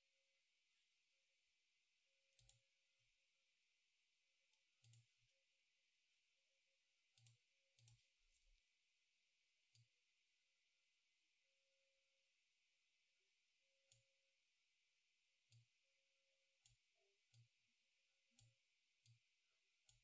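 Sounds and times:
faint computer mouse clicks: 2.4 - 2.6, 4.8 - 5.1, 7.1 - 8.4.

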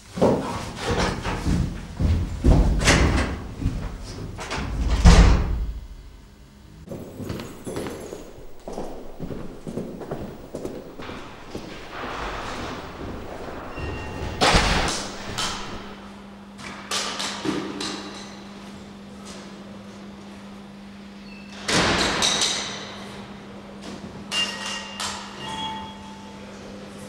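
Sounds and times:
footsteps in echoing hall: 0.1 - 6.1, 6.9 - 16.0
steady low hum: 1.3 - 16.2
door thudding shut: 4.7 - 5.9, 6.9 - 16.0
loud bang: 6.9 - 16.0.

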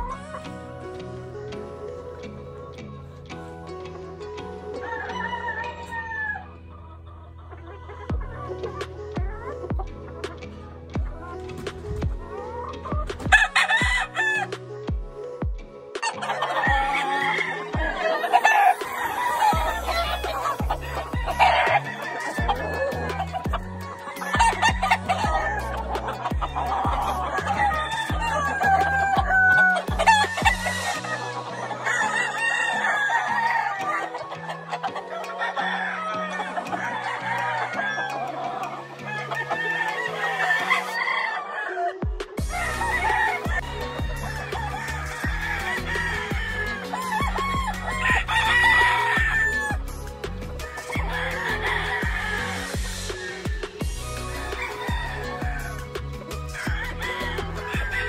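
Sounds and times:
background music with bass line: 0.0 - 58.0
roosters crowing and clucking: 0.0 - 58.0.

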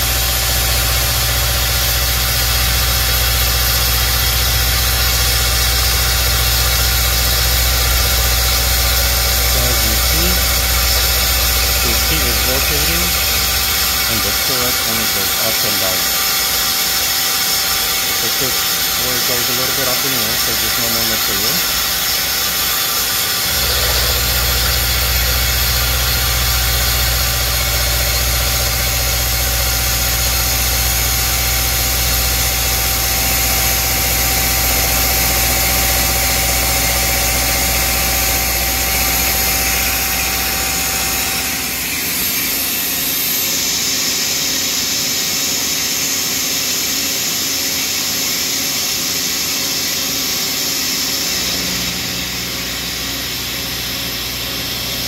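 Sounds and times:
machine whine: 0.0 - 55.0
milling machine cutting hum: 0.0 - 55.0.

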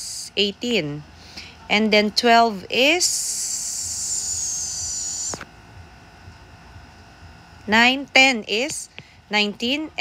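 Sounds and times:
faint low hum: 0.0 - 10.0
high-pitched hiss with whistle: 3.1 - 5.4.

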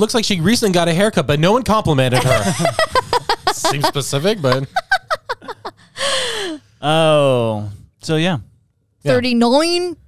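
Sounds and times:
woman laughing: 2.2 - 6.6
person talking: 3.5 - 4.8
breathy gasping exhale: 5.8 - 6.8.

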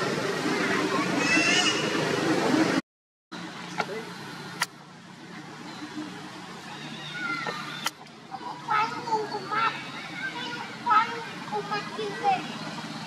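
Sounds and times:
loud noisy background: 0.0 - 2.8, 3.4 - 13.0.

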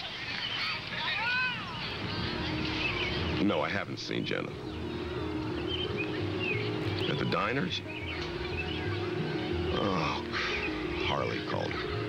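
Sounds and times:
soft music with held notes: 1.8 - 12.0.

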